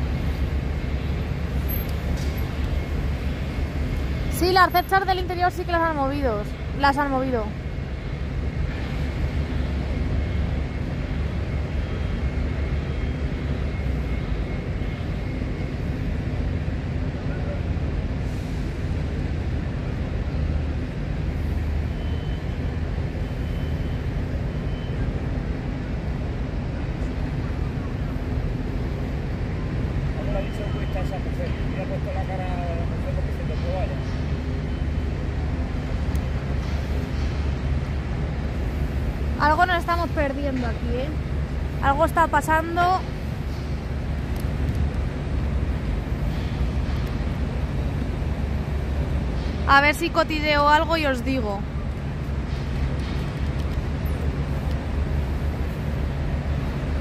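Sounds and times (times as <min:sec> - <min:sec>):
diesel machinery droning: 0:00.0 - 0:57.0.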